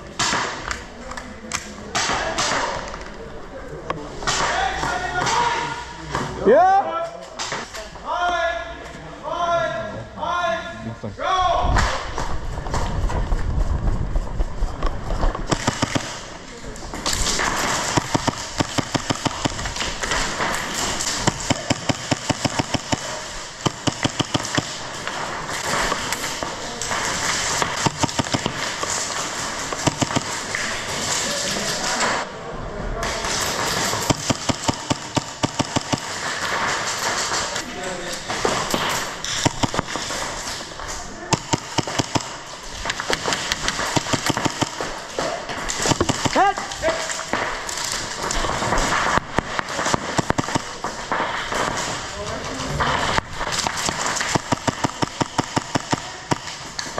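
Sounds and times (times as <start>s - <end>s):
pellets striking barricades: 0.1s - 0.7s, 15.3s - 32.2s, 33.0s - 56.9s
airsoft guns firing: 1.9s - 3.0s, 15.4s - 32.2s, 33.0s - 52.1s, 52.8s - 56.9s.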